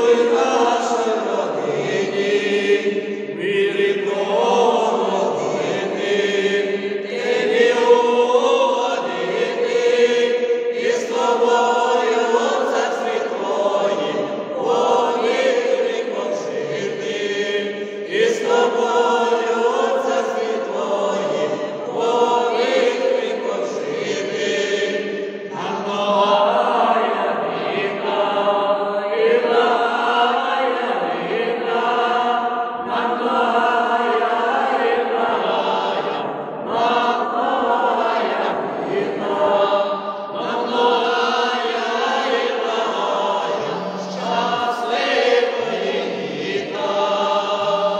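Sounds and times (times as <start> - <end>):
choir singing unaccompanied: 0.0 - 47.9.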